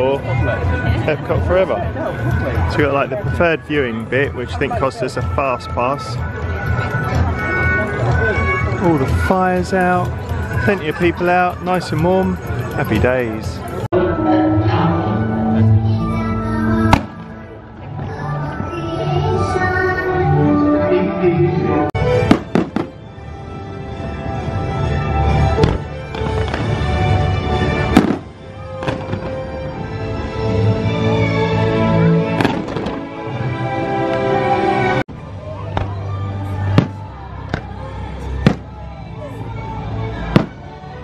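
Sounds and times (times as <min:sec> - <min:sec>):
music playing: 0:00.0 - 0:41.0
fireworks bursting: 0:22.2 - 0:23.1, 0:25.6 - 0:27.0, 0:27.6 - 0:29.4, 0:32.4 - 0:33.1, 0:36.7 - 0:37.8, 0:38.4 - 0:38.8, 0:40.3 - 0:40.7
firework shells bursting: 0:27.9 - 0:29.4
faint music: 0:32.4 - 0:41.0.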